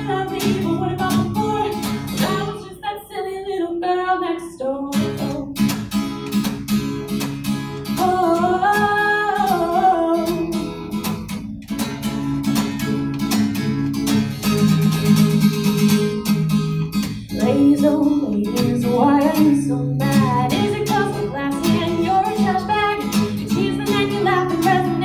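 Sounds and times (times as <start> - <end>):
strummed acoustic guitar: 0.0 - 3.4, 4.9 - 25.0
woman singing: 0.0 - 5.7, 7.9 - 11.0, 17.3 - 25.0.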